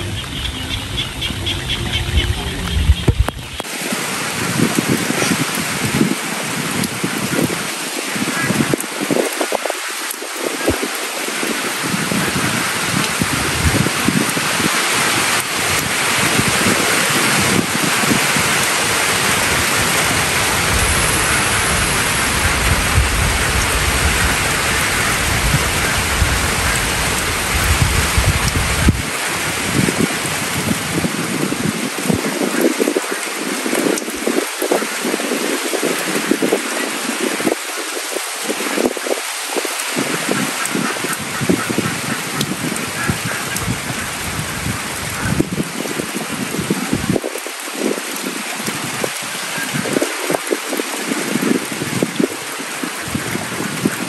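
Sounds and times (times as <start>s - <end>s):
low rumble: 0.0s - 3.6s
heavy rain on corrugated roof: 0.0s - 54.0s.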